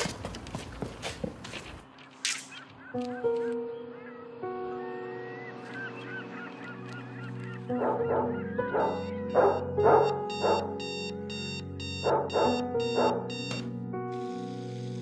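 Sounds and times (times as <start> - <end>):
soft piano music: 2.7 - 15.0
alarm clock beeping rapidly: 8.8 - 13.7
alarm clock switch click: 11.8 - 13.8.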